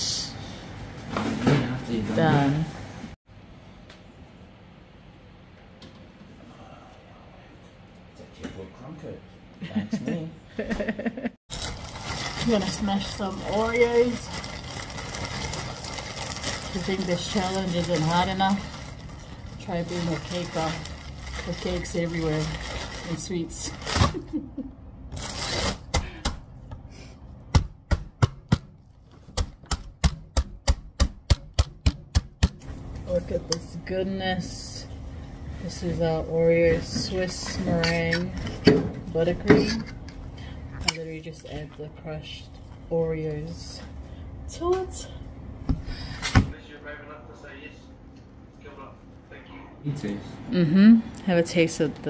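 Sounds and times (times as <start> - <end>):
rubber mallet crushing cookies: 27.5 - 32.6.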